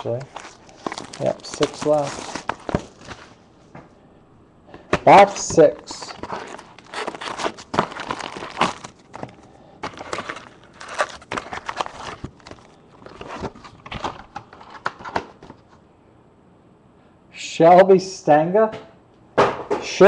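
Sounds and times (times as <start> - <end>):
plastic wrapping tearing and crumpling: 0.0 - 3.4, 5.1 - 13.5.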